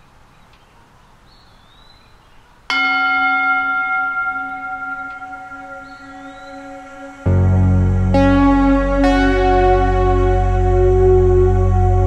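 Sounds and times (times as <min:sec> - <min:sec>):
faint background noise: 0:00.0 - 0:12.0
bell-like strike ringing: 0:02.7 - 0:10.8.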